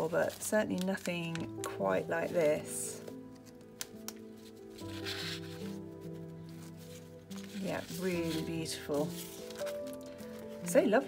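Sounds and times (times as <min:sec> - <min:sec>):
paper sheets rustling: 0:00.0 - 0:11.0
soft background music: 0:00.0 - 0:11.0.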